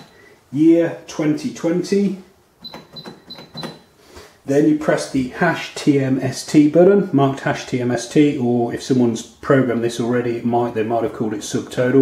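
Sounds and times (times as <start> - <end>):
cash register key beeps: 2.6 - 3.9.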